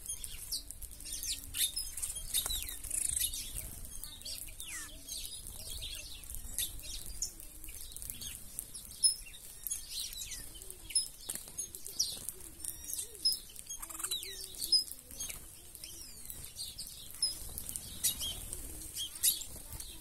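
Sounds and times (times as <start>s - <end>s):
birds chirping: 0.0s - 20.0s
doves cooing: 0.0s - 20.0s
wings flapping: 0.1s - 20.0s.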